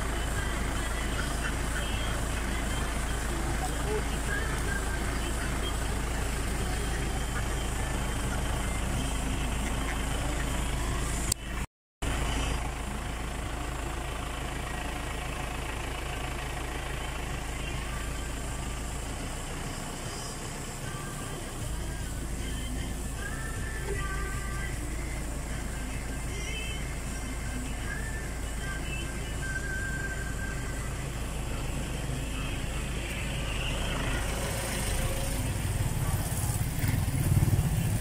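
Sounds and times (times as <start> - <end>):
indistinct voices: 0.0 - 14.3, 15.1 - 38.0
vehicle engine idling: 0.0 - 38.0.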